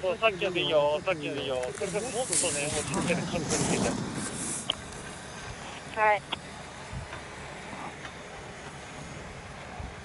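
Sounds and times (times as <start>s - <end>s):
voices talking: 0.0s - 8.0s
skis scraping over snow: 1.6s - 5.8s.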